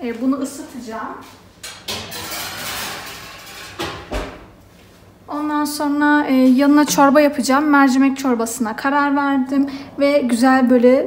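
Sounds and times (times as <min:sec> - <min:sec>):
kitchen knocks: 0:06.8 - 0:07.5.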